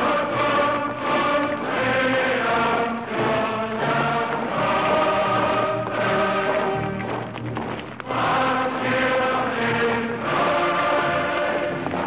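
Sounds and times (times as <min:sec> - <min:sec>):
trailer music with chanting voices: 0:00.0 - 0:07.4, 0:08.0 - 0:12.0.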